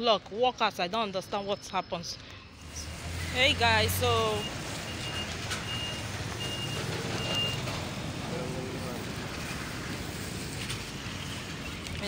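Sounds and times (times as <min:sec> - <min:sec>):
street noise: 0:00.0 - 0:12.0
reversing alarm beeps: 0:04.0 - 0:07.7.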